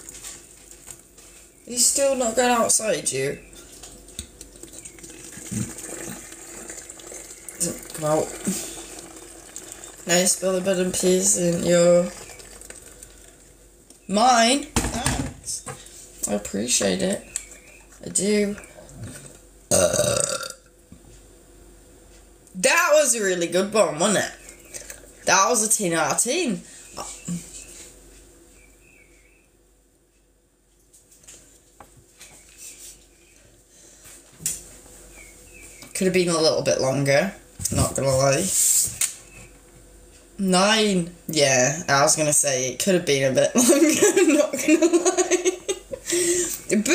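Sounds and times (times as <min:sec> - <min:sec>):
hot water pouring into bottle: 0:03.8 - 0:13.5.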